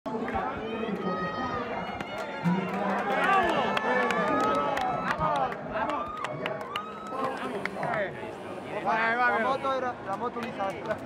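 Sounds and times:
people shouting and talking: 0.1s - 11.0s
crowd murmur: 6.6s - 11.0s.

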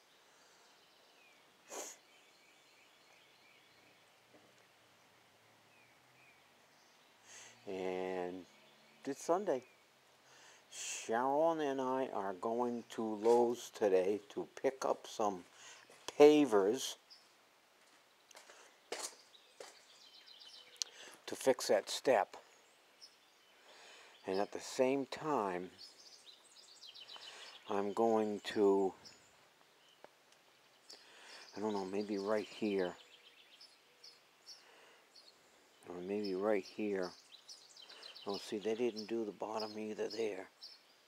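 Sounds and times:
breath: 0.3s - 0.9s, 7.2s - 7.6s, 10.2s - 10.7s, 15.5s - 16.0s, 20.9s - 21.2s, 23.6s - 24.2s, 27.1s - 27.6s, 30.9s - 31.5s, 34.5s - 35.7s, 37.8s - 38.2s
person sniffing: 1.7s - 2.0s, 7.2s - 7.6s
faint footsteps: 3.1s - 4.8s, 13.1s - 13.8s, 15.4s - 16.2s, 17.2s - 21.2s
man's voice: 7.6s - 9.7s, 10.7s - 15.5s, 16.1s - 17.0s, 24.3s - 25.8s, 27.7s - 29.0s, 31.5s - 33.0s, 35.9s - 37.1s, 38.2s - 40.5s.

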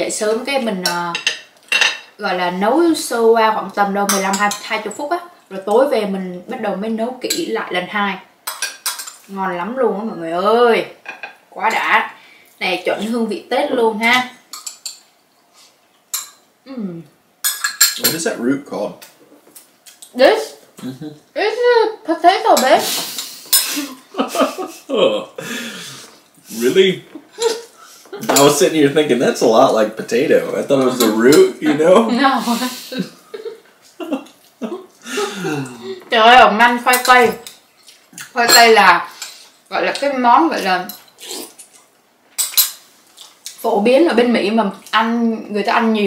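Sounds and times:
utensils clinking on ceramic bowls: 8.4s - 9.3s, 14.5s - 15.0s, 17.4s - 18.2s, 28.2s - 28.6s, 36.9s - 37.6s, 42.4s - 42.9s.

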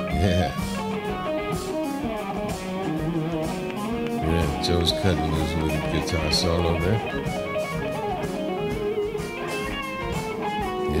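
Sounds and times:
live band playing: 0.0s - 10.9s
electric guitar solo: 0.0s - 11.0s.

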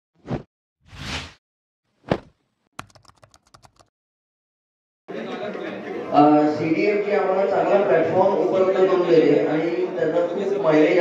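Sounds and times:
short thump: 2.0s - 2.4s
keyboard typing clicks: 2.8s - 3.9s.

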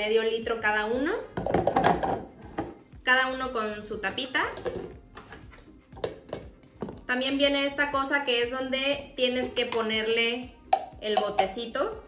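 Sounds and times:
plastic containers set down on countertop: 1.4s - 2.8s, 4.5s - 7.0s.

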